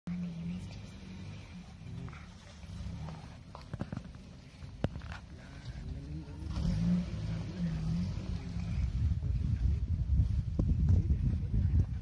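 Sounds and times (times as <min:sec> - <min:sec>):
low rumble: 0:00.1 - 0:12.0.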